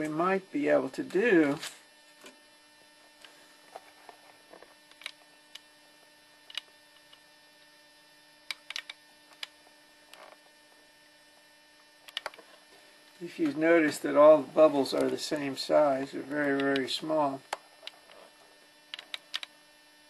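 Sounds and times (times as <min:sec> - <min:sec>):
faint electrical hum: 0:00.0 - 0:20.0.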